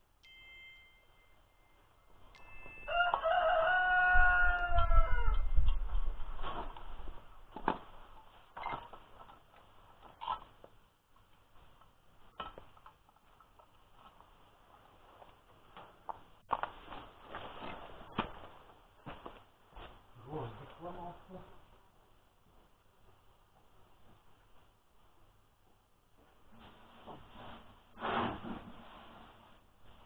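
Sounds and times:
sharp metal clinks: 0.2s - 3.5s
rooster crowing: 2.8s - 5.6s.

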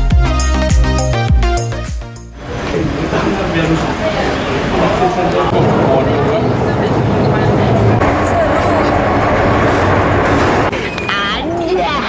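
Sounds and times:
metro train rumble: 2.4s - 11.8s
people's voices: 2.4s - 12.0s.

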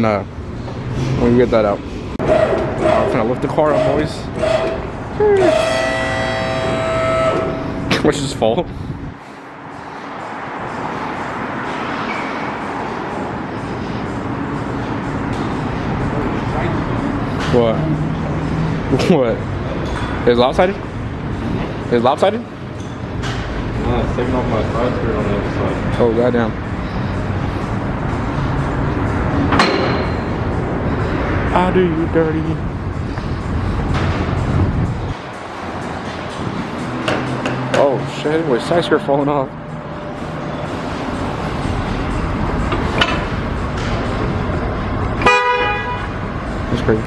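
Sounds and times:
sharp metallic clank: 29.5s - 30.3s.

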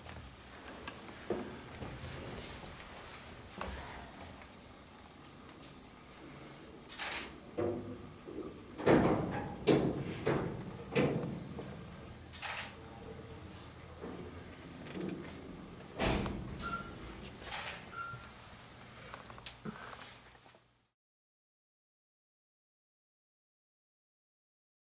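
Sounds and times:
knocks and clunks: 8.8s - 11.8s, 16.0s - 16.9s.

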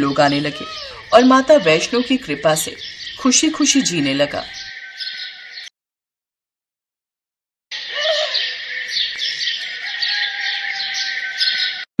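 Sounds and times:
small birds chirping: 0.0s - 5.7s, 7.7s - 11.9s.

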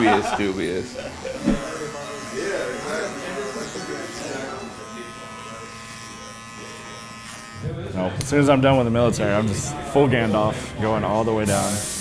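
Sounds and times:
electric hair clippers buzzing: 0.0s - 7.8s.

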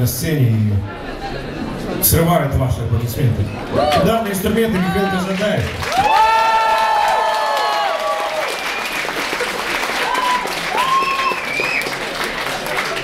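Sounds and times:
audience applauding: 3.8s - 13.0s.

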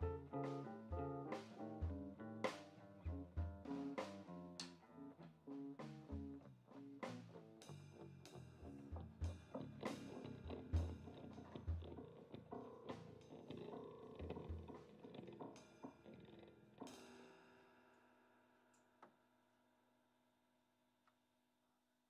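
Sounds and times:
grand piano: 0.0s - 3.9s
electric guitar: 0.0s - 16.9s.

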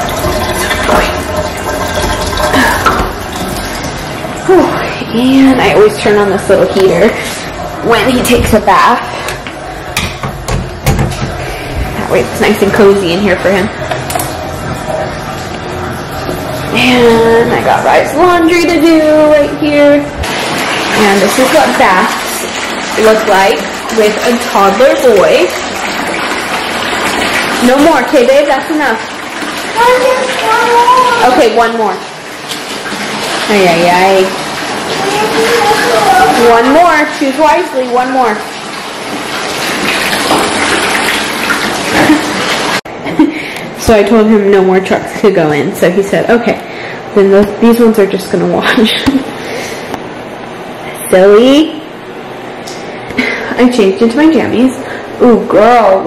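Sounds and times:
bathtub filling from tap: 0.0s - 56.0s
space heater fan running: 0.0s - 56.0s.

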